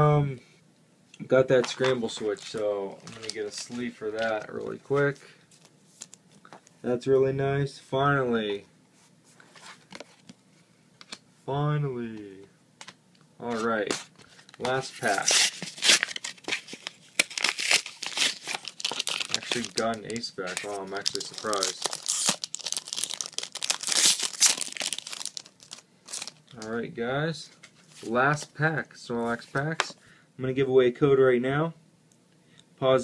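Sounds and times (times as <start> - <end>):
foil pack crinkling: 1.6 - 4.8, 14.3 - 26.6.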